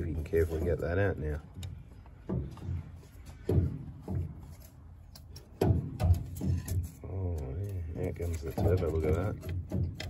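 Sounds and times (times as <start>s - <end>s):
metal parts knocking and scraping: 0.0s - 10.0s.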